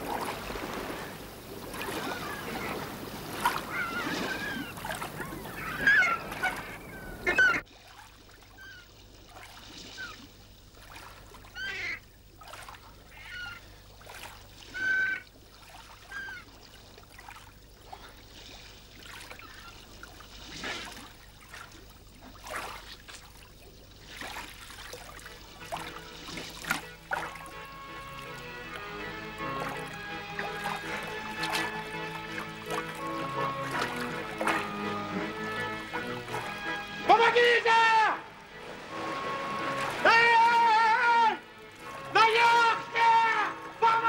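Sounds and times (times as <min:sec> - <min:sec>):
gulls calling: 0:00.0 - 0:44.0
waves splashing: 0:00.0 - 0:44.0.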